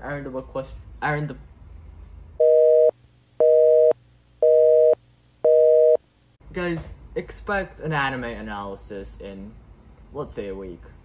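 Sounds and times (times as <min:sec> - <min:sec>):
telephone busy signal: 0:02.4 - 0:06.0.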